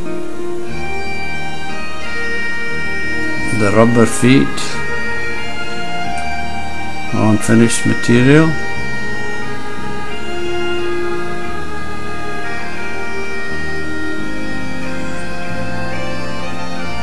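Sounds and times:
bagpipe music: 0:00.0 - 0:17.0.

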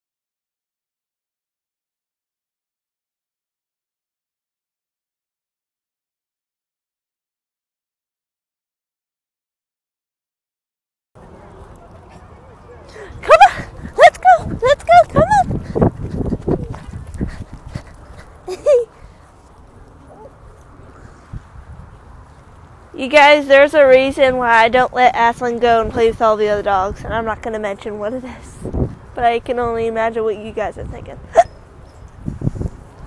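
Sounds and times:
wind buffeting microphone: 0:12.8 - 0:33.0
yelp-like vocal sound: 0:31.3 - 0:31.6.

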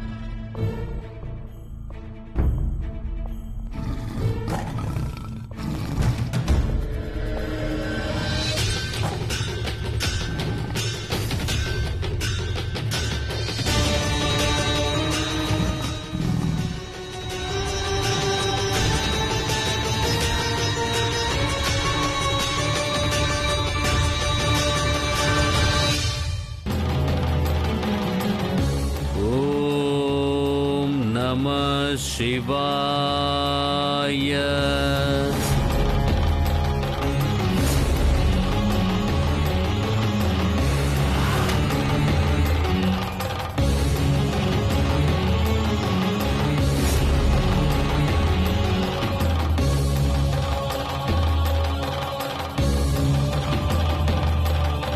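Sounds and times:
ominous background music: 0:00.0 - 0:54.9
tiger roaring: 0:03.7 - 0:06.8
person chanting: 0:29.0 - 0:35.7.

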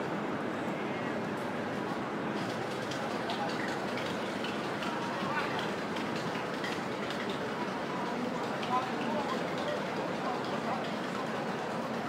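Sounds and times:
crowd babble: 0:00.0 - 0:12.0.

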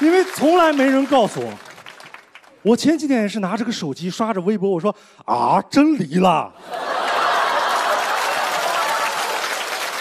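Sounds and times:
audience applauding: 0:00.0 - 0:02.6, 0:06.7 - 0:10.0.

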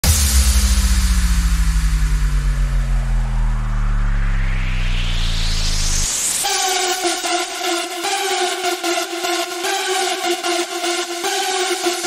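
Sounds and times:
rising noise sweep: 0:00.0 - 0:07.5
wobbling bass synth: 0:00.0 - 0:07.6.

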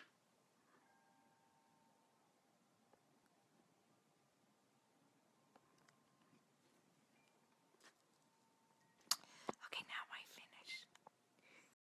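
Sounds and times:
woman whispering: 0:09.5 - 0:11.0.

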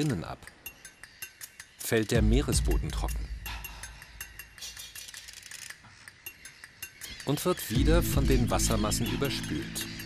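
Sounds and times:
flock of birds chirping: 0:00.0 - 0:10.0.

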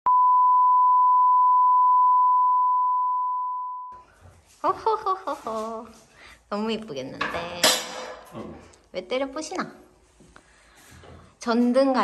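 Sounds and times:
steady pure beep: 0:00.0 - 0:04.0.

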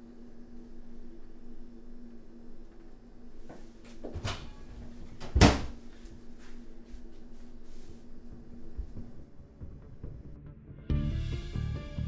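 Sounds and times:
wooden cabinet door banging shut: 0:05.2 - 0:05.8.

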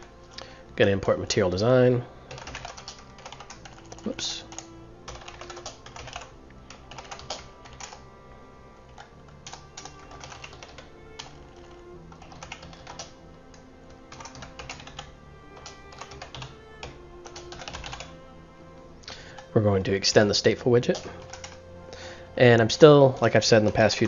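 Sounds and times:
soft background music: 0:00.0 - 0:24.0
computer keyboard typing: 0:02.3 - 0:08.0, 0:08.9 - 0:13.2, 0:14.1 - 0:18.2, 0:20.9 - 0:21.6, 0:23.2 - 0:24.0.

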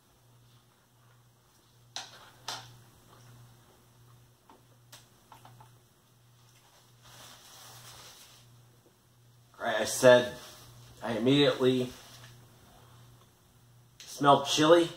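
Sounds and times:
steady low hum: 0:00.0 - 0:14.9.

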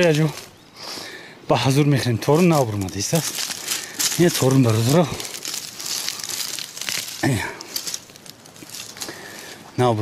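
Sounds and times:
dry grass rustling and crackling: 0:00.0 - 0:00.7, 0:01.5 - 0:10.0.

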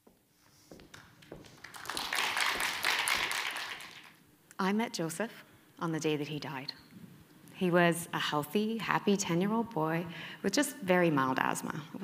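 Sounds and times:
audience applause: 0:01.4 - 0:04.2.

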